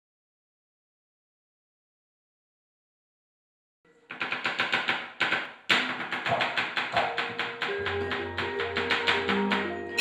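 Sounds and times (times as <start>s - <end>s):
rapid wooden rattling strikes: 4.1s - 9.7s.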